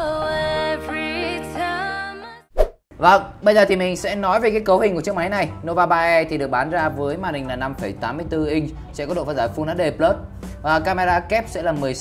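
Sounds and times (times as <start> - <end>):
music: 0.0 - 2.5, 3.7 - 12.0.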